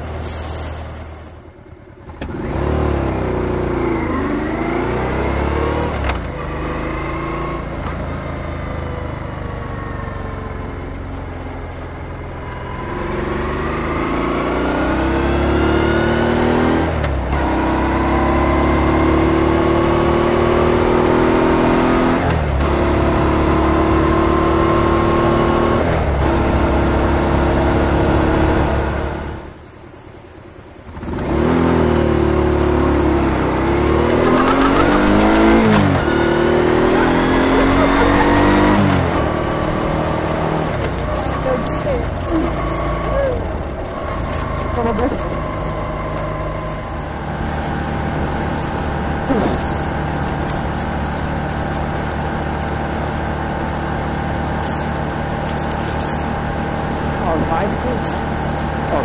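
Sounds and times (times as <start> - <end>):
motorcycle engine accelerating: 0.0 - 29.6, 30.8 - 59.0.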